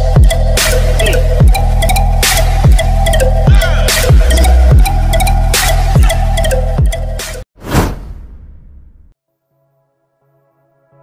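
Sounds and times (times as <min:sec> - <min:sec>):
whoosh sound effect: 0:07.6 - 0:08.5.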